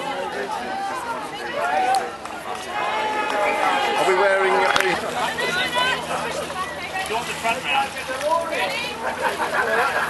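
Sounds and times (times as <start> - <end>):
people chatting and calling out: 0.0 - 10.0.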